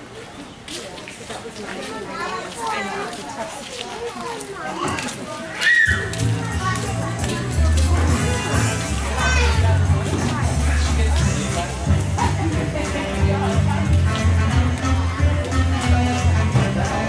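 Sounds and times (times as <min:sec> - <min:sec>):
children chattering and calling out: 0:00.0 - 0:17.0.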